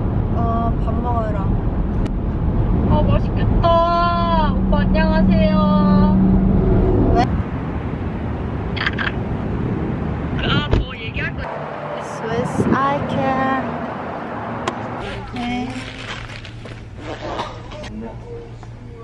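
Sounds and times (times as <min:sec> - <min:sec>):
car cabin road noise: 0:00.0 - 0:19.0
conversation: 0:00.3 - 0:07.3, 0:10.3 - 0:19.0.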